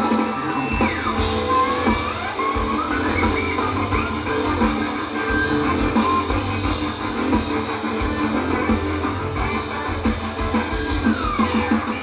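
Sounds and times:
bending guitar lead line: 0:00.0 - 0:12.0
live rock band: 0:00.0 - 0:12.0.

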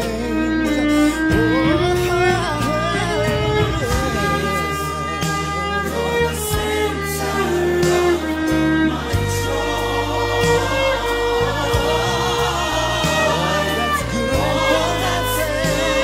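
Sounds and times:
electric violin melody: 0:00.0 - 0:16.0
gospel backing track with singing: 0:00.0 - 0:16.0.

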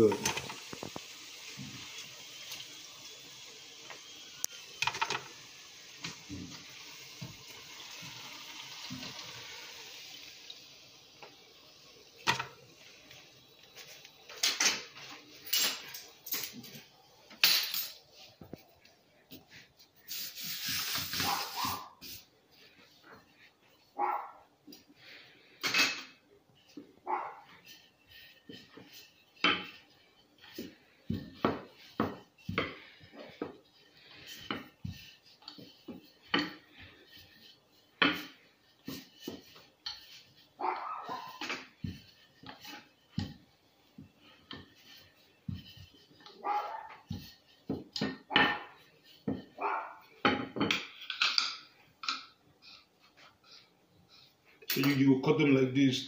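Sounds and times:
utensils clattering on counter: 0:00.0 - 0:00.9, 0:04.8 - 0:05.3, 0:14.3 - 0:18.1, 0:25.6 - 0:26.2, 0:44.4 - 0:52.3
frying oil sizzling: 0:00.0 - 0:16.2, 0:20.0 - 0:22.2, 0:27.6 - 0:49.4.

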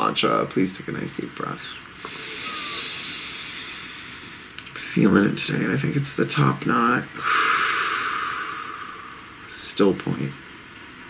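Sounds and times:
person taking deep breath: 0:02.0 - 0:04.5, 0:07.2 - 0:09.3.

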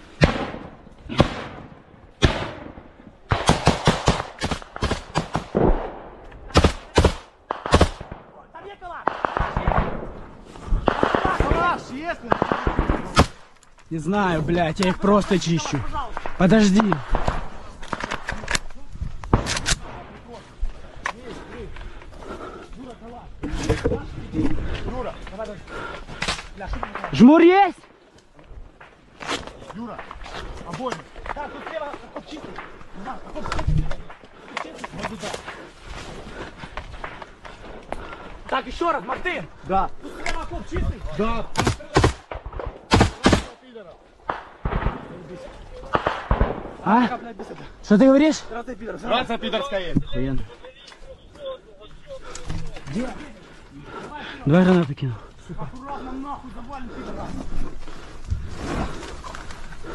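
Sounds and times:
rifle shots: 0:00.2 - 0:08.4, 0:09.0 - 0:10.2, 0:10.8 - 0:13.5, 0:41.5 - 0:43.6, 0:44.2 - 0:46.8
rustling: 0:50.0 - 0:59.9.

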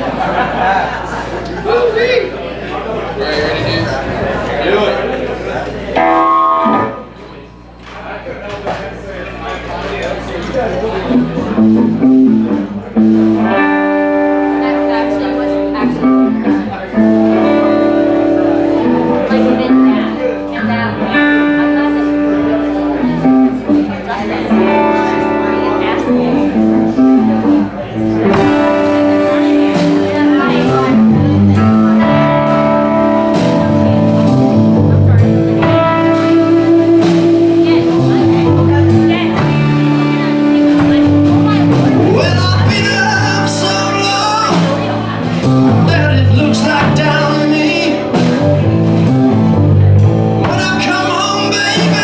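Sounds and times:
bass guitar: 0:00.0 - 0:52.0
electric guitars riffing: 0:03.5 - 0:07.7, 0:10.2 - 0:52.0
drums and cymbals: 0:28.1 - 0:52.0.

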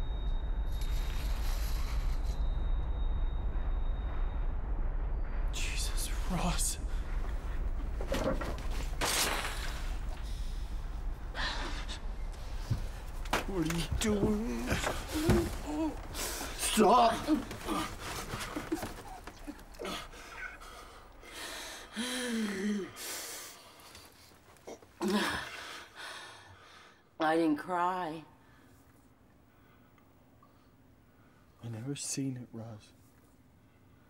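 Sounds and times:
steady low hum: 0:00.0 - 0:24.8.

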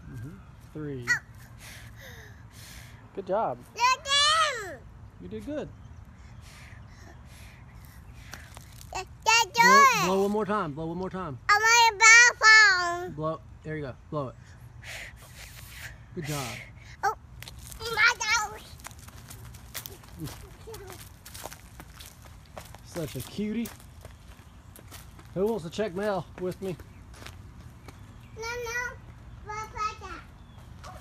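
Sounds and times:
footsteps on dry leaves and concrete: 0:07.8 - 0:10.5, 0:17.3 - 0:28.4, 0:30.2 - 0:31.0.

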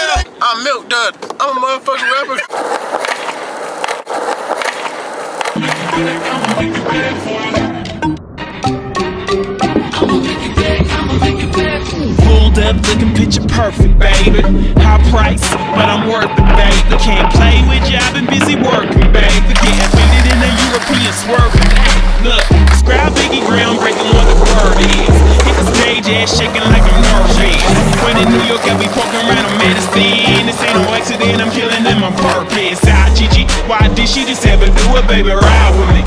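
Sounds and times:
skateboard wheels rolling on concrete: 0:00.0 - 0:08.0, 0:09.4 - 0:36.0
skateboard clicks: 0:02.5 - 0:06.6, 0:19.5 - 0:32.8
music: 0:05.6 - 0:36.0
rap track with deep bass: 0:09.8 - 0:36.0.

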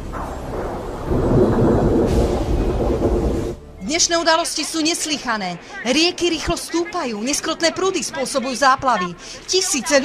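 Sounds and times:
thunder clap and rumble: 0:00.0 - 0:03.6.

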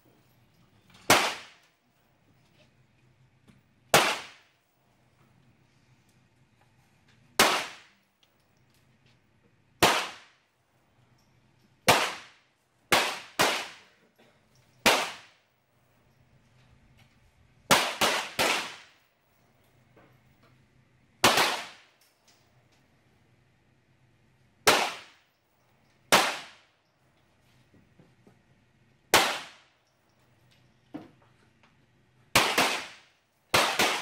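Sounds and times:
pistol shots with echo: 0:01.1 - 0:01.6, 0:03.9 - 0:04.5, 0:07.4 - 0:07.9, 0:09.8 - 0:10.4, 0:11.9 - 0:13.9, 0:14.8 - 0:15.4, 0:17.7 - 0:19.0, 0:21.2 - 0:21.9, 0:24.7 - 0:25.2, 0:26.1 - 0:26.6, 0:29.1 - 0:29.7, 0:32.4 - 0:34.0.

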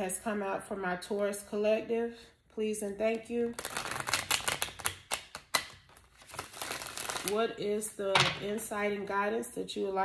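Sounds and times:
cards being shuffled: 0:03.5 - 0:07.4.

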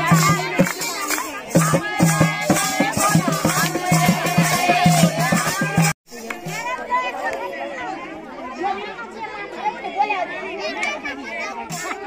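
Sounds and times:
women chattering: 0:00.0 - 0:12.0.

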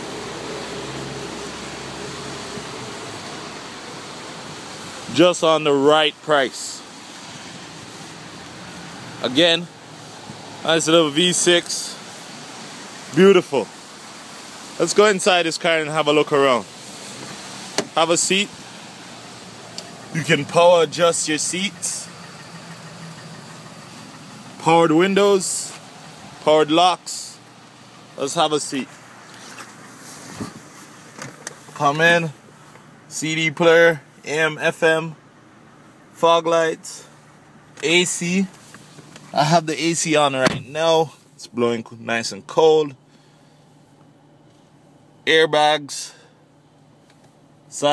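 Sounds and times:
car engine idling: 0:00.0 - 0:36.3
wet outdoor hiss: 0:00.0 - 0:47.9
car engine running: 0:16.0 - 0:26.7.

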